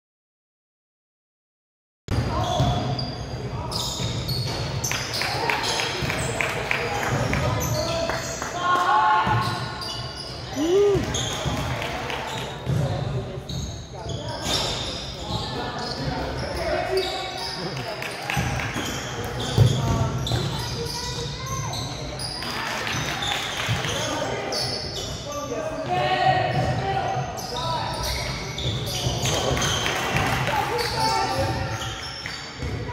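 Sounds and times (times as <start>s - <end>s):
sneakers squeaking: 2.1s - 32.9s
voices of players and onlookers: 2.1s - 32.9s
players calling out: 10.4s - 11.3s.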